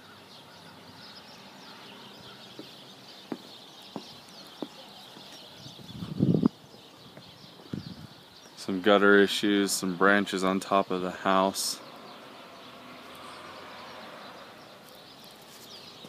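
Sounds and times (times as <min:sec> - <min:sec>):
faint birds chirping: 0:00.0 - 0:16.0
footsteps: 0:02.5 - 0:05.5.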